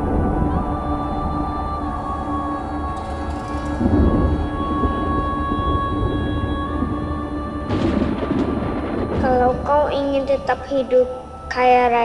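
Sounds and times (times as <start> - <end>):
low rumble: 0.0 - 12.0
sustained droning tones: 0.0 - 12.0.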